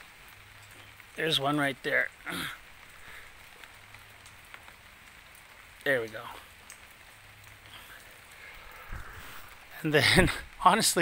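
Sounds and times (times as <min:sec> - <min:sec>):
faint outdoor hiss: 0:00.0 - 0:11.0
soft ticks: 0:03.6 - 0:08.1.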